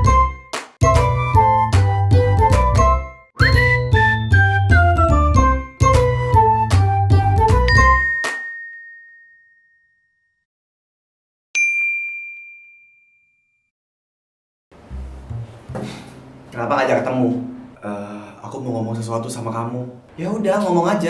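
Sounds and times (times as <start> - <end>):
bell-like jingle melody: 7.7 - 10.0, 11.6 - 13.6
high bell note ringing: 7.7 - 10.0, 11.6 - 13.6
bass line: 14.8 - 16.7.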